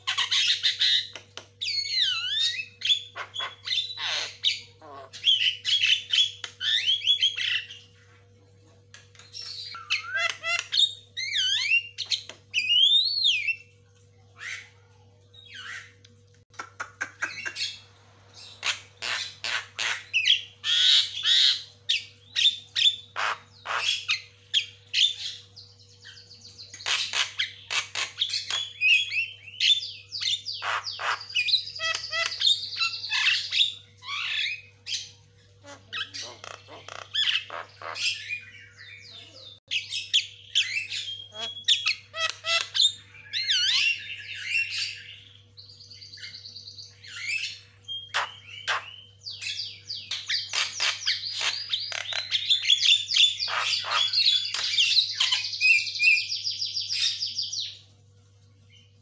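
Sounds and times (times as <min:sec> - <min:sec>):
myna bird singing: 0:00.0 - 0:08.0, 0:08.9 - 0:59.0.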